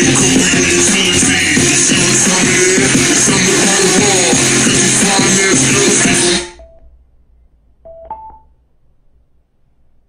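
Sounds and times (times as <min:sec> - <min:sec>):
song with vocals through speakers: 0:00.0 - 0:06.9
brief electronic beep: 0:07.9 - 0:08.5.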